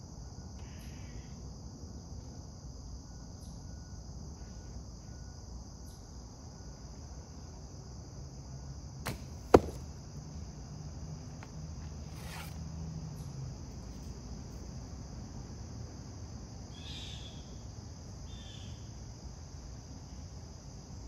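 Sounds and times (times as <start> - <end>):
crickets chirring: 0.0 - 21.0
arrow striking with sharp crack: 9.1 - 9.8
bow string snap: 9.1 - 9.8.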